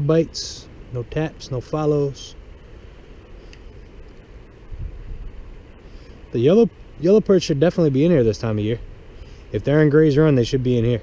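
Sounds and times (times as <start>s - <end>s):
wind buffeting microphone: 4.6s - 5.6s.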